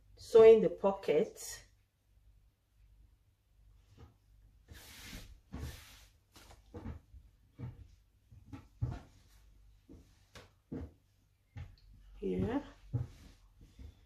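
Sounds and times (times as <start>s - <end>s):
fabric rustling: 4.0s - 11.0s.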